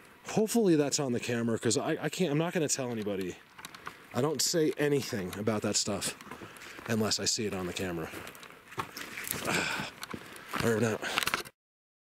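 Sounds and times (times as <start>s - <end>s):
footsteps in undergrowth: 2.9s - 11.4s
brushing through undergrowth: 5.0s - 11.0s.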